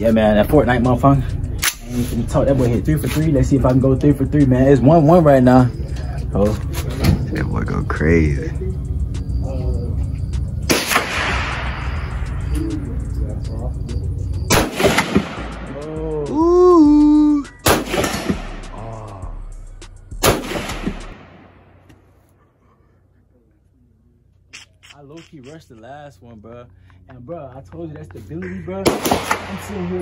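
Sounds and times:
background music: 0:00.0 - 0:21.8
rifle shots with echo: 0:10.7 - 0:12.1, 0:14.5 - 0:15.8, 0:17.6 - 0:18.7, 0:20.2 - 0:21.8, 0:28.8 - 0:30.0.

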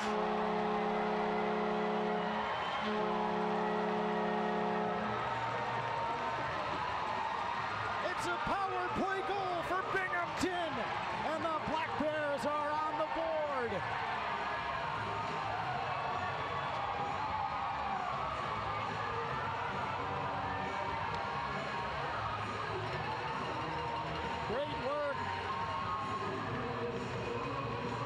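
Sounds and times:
crowd noise and voices: 0:00.0 - 0:28.0
music over public address: 0:05.0 - 0:28.0.

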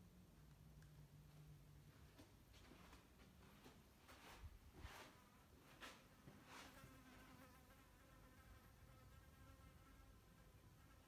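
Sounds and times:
faint steady buzz: 0:00.0 - 0:11.0.

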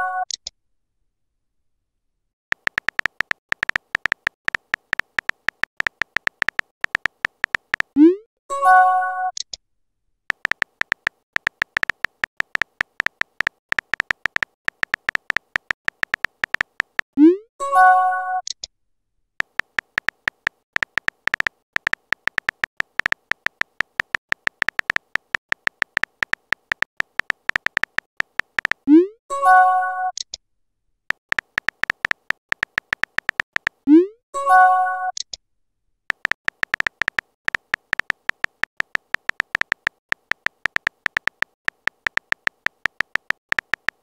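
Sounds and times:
phone keyboard typing ticks: 0:02.5 - 0:08.1, 0:10.3 - 0:17.2, 0:19.4 - 0:28.9, 0:31.1 - 0:33.9, 0:36.1 - 0:44.0.

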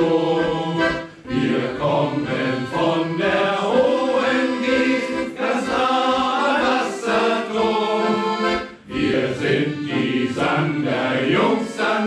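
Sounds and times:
accordion: 0:00.0 - 0:12.0
men's choir singing: 0:00.0 - 0:12.0.

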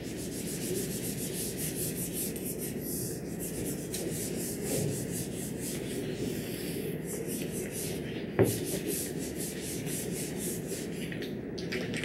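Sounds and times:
eraser wiping whiteboard: 0:00.0 - 0:11.1.

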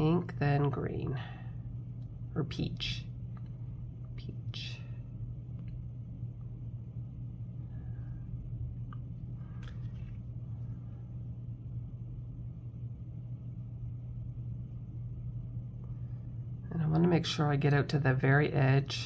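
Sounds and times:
low background hum: 0:00.0 - 0:19.0.

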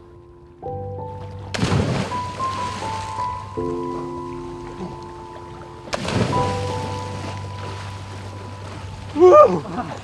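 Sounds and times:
background music held notes: 0:00.0 - 0:10.0
water splash from dive: 0:01.5 - 0:03.2, 0:05.9 - 0:08.2.

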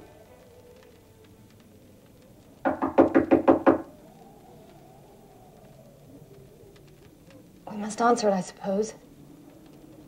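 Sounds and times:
hard knocks on a door: 0:02.6 - 0:03.9.

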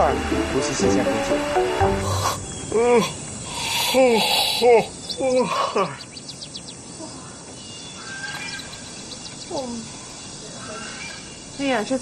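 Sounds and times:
person yawning: 0:02.0 - 0:05.9.

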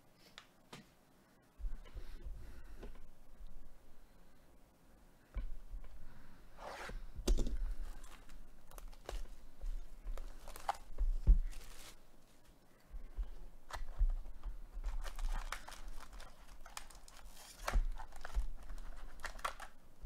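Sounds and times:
foil packs crinkling: 0:07.9 - 0:12.0, 0:13.6 - 0:19.8
plastic wrap tearing: 0:10.2 - 0:12.0, 0:14.8 - 0:19.8.

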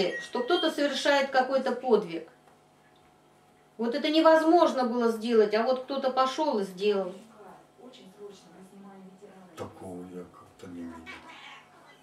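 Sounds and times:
people talking: 0:00.0 - 0:02.3, 0:03.8 - 0:12.0.

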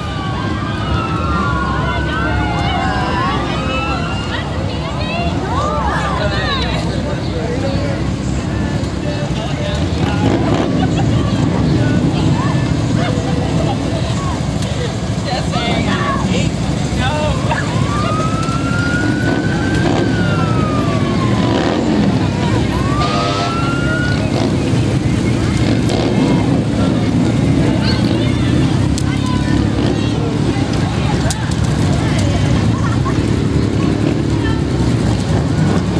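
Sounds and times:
people talking: 0:00.0 - 0:35.9
slow vehicles rumbling: 0:00.0 - 0:35.9
emergency siren winding: 0:17.7 - 0:24.5.

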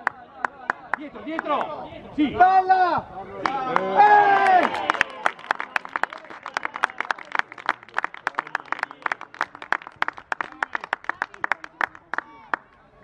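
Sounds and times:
scattered applause: 0:03.4 - 0:12.9.

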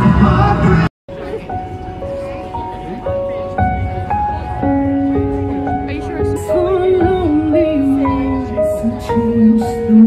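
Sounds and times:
backing music: 0:00.0 - 0:10.0
woman singing into microphone: 0:06.4 - 0:10.0.

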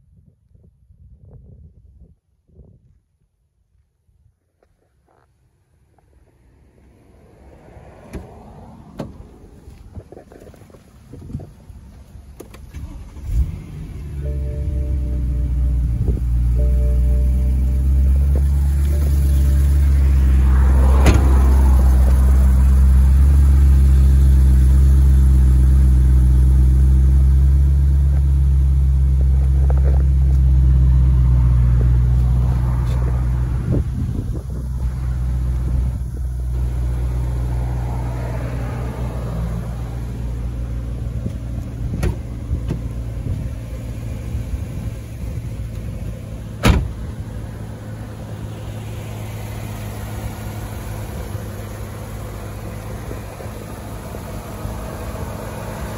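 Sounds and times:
car engine idling: 0:09.0 - 0:55.9.

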